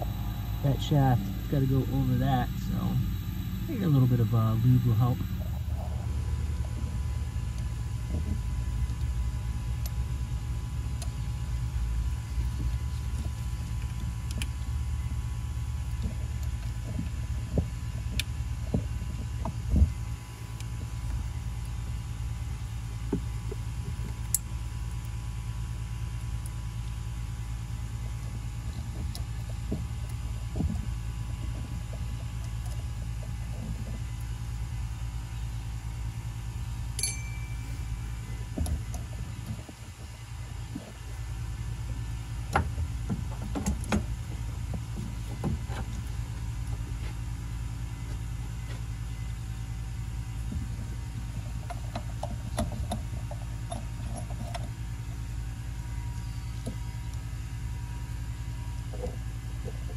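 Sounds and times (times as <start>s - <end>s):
low background rumble: 0.0s - 59.9s
engine parts clicking and tapping: 50.4s - 55.2s.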